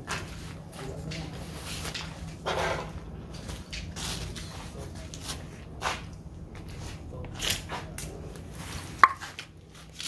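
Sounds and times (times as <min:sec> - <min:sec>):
sharp knock: 0:09.0 - 0:09.2.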